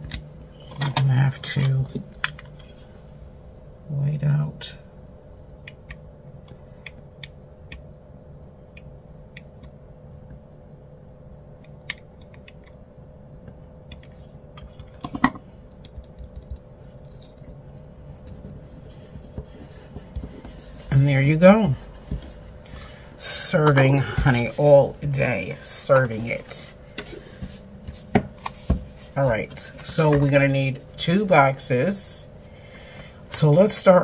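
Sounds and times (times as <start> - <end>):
faint steady hum: 0.0 - 34.0.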